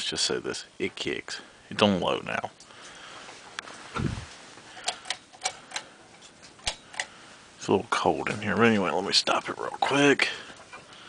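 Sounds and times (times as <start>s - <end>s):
ceiling fan hum: 0.0s - 11.0s.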